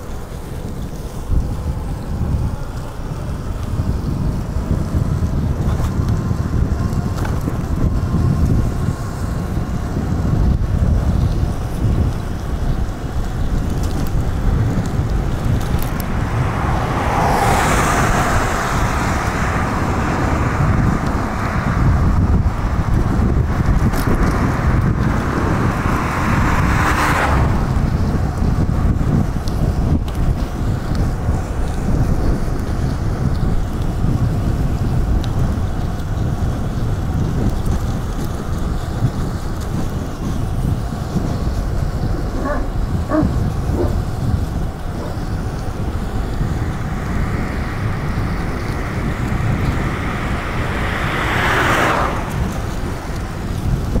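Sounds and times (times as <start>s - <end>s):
vehicles rushing past: 0.0s - 54.0s
wind rumble on microphone: 0.0s - 54.0s.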